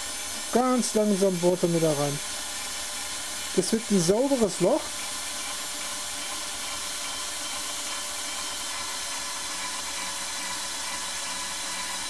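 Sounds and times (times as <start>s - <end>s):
cordless screwdriver drilling plastic: 0.0s - 12.0s.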